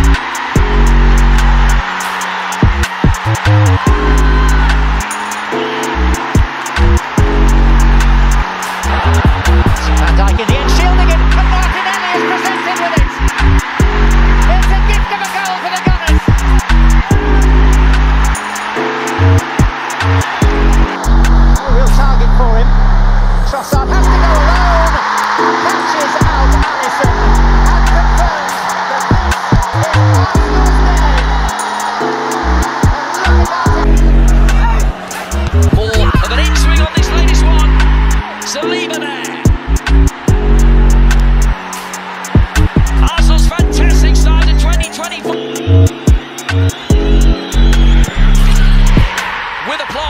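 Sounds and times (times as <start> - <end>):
background music with heavy bass: 0.0 - 50.0
stadium crowd noise: 0.0 - 50.0.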